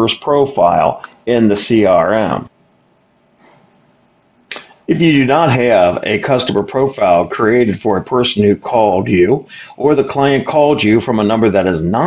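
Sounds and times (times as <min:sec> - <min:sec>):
person speaking: 0:04.5 - 0:12.0
sharp intake of breath: 0:09.5 - 0:09.8.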